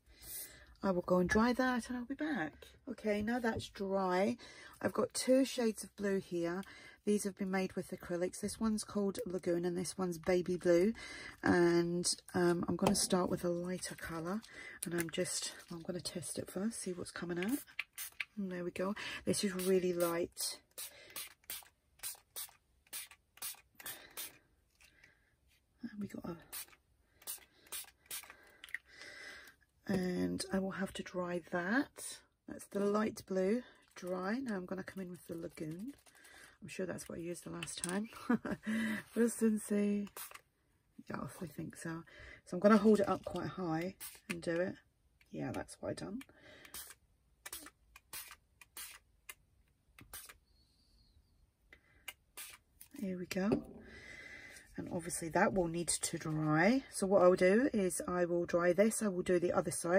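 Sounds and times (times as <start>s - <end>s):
spray bottle hissing: 17.6s - 18.3s, 20.7s - 24.4s, 26.5s - 28.3s, 40.0s - 40.4s, 44.0s - 44.3s, 46.7s - 49.0s, 50.0s - 50.4s, 52.3s - 52.6s.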